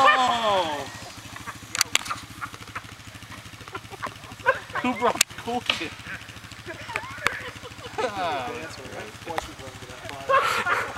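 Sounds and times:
atv engine idling: 0.0 - 10.9.

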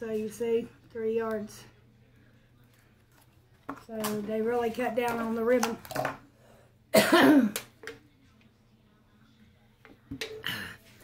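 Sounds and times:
woman coughing: 6.9 - 7.6.

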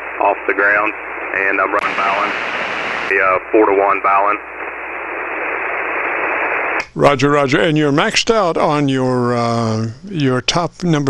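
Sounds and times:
radio static hiss: 0.0 - 11.0.

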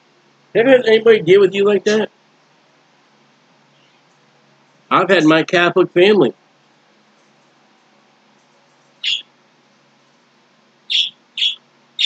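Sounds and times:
small bird chirping: 3.7 - 4.2, 8.8 - 9.3, 10.9 - 12.0.

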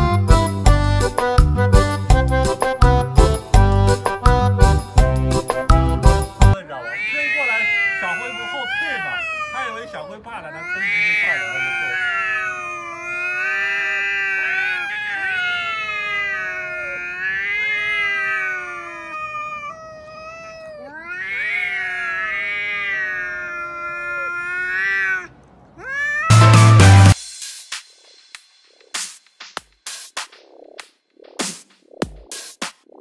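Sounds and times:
cats yowling: 6.7 - 27.2.

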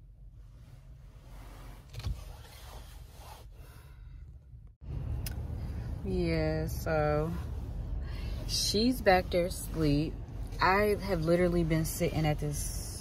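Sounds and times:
low hum inside car cabin: 0.0 - 13.0.

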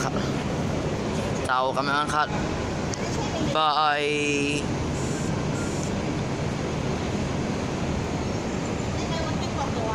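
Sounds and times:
bus diesel engines idling: 0.0 - 9.9.

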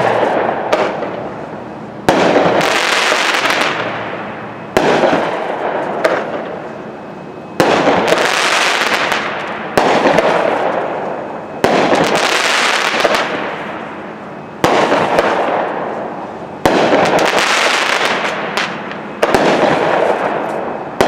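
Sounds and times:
firework crackling: 0.0 - 6.9, 7.6 - 21.0
firework bangs: 0.0 - 21.0.

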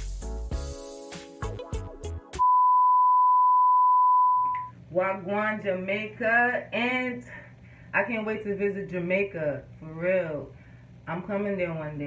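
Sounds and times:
background music: 0.0 - 2.4
steady high test tone beep: 2.4 - 4.7.

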